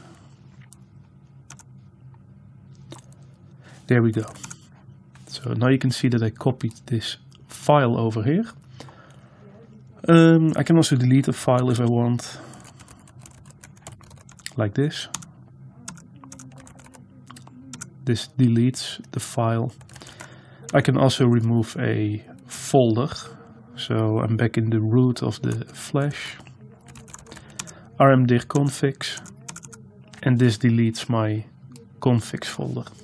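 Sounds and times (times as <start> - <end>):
faint low hum: 0.0 - 33.0
computer keyboard keystrokes: 1.5 - 1.7, 4.3 - 4.6, 12.6 - 15.3, 15.9 - 17.9, 26.8 - 27.7, 29.2 - 29.8.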